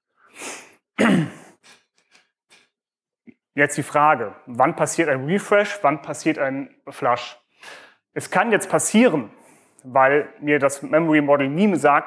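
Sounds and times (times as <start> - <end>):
man breathing in: 7.5 - 8.1.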